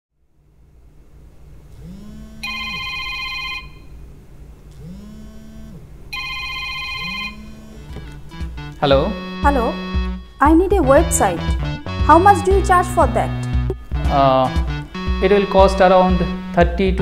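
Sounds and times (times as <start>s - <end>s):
electronic phone ringtone: 2.3s - 4.0s, 5.5s - 8.6s.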